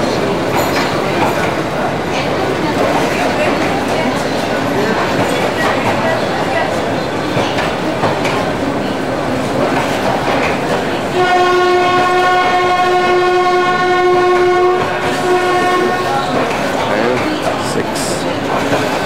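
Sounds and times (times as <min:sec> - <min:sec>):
locomotive horn: 0:11.1 - 0:16.4.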